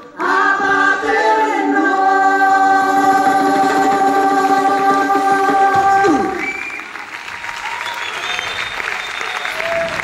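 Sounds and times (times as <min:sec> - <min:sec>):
group of voices singing: 0:00.0 - 0:06.4.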